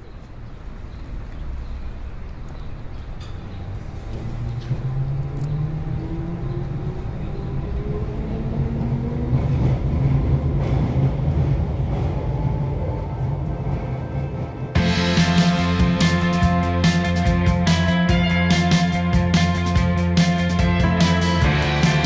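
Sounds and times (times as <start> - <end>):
train rumble: 0.0 - 22.0.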